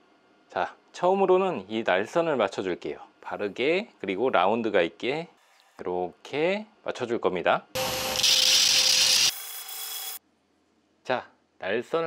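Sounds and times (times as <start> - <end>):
belt grinder grinding steel: 7.8 - 10.2.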